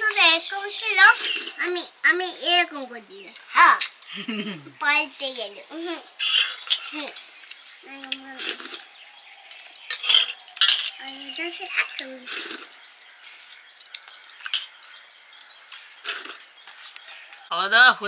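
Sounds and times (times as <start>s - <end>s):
steel plates clinking: 6.0s - 7.4s, 9.7s - 15.0s.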